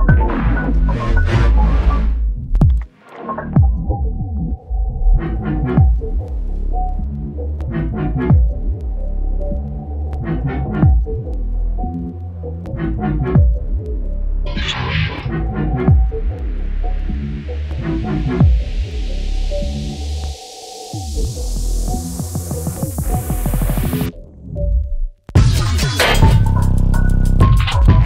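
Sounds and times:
deep sub-bass: 0.0s - 28.0s.

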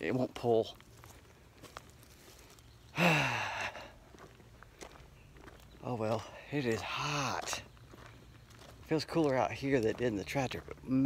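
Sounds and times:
man sighing heavily: 2.9s - 4.1s.

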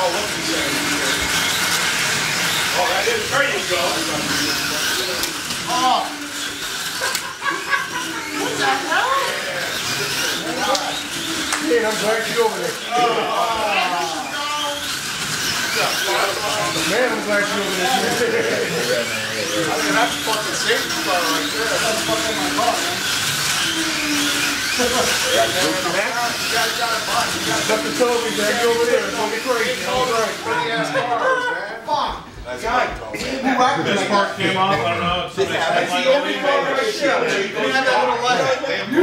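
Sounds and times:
slot car motor whine: 0.0s - 31.2s
men talking: 0.0s - 39.0s.

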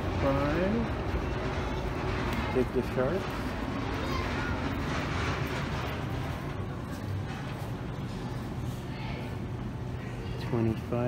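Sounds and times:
low hum: 0.0s - 10.4s.

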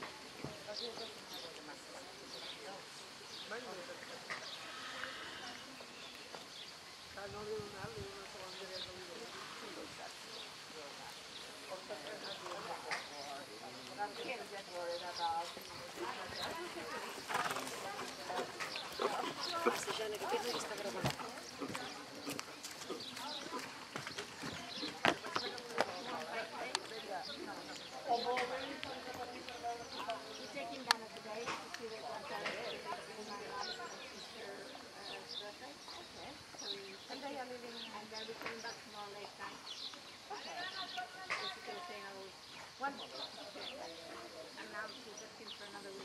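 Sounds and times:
birds chirping: 0.0s - 46.0s
faint voices: 0.0s - 46.0s
horse hoofbeats on sand: 15.4s - 27.0s.

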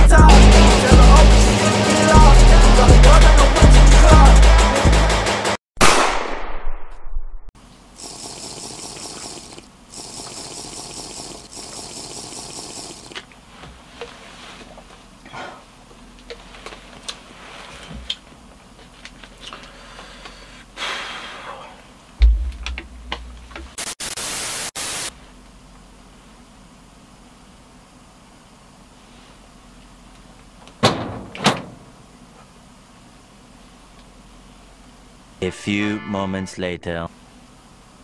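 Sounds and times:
background music: 0.0s - 5.6s, 35.4s - 36.8s
tv static hiss: 23.6s - 25.2s.

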